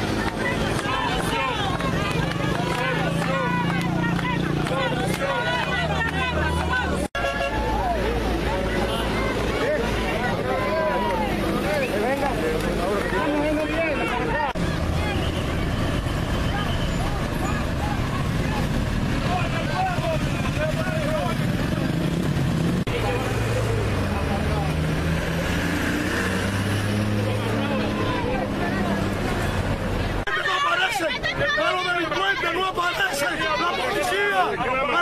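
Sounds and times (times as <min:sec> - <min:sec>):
truck engine passing: 0:00.0 - 0:30.3
cars passing: 0:00.0 - 0:35.0
motorcycles passing: 0:00.0 - 0:35.0
voices: 0:00.0 - 0:35.0.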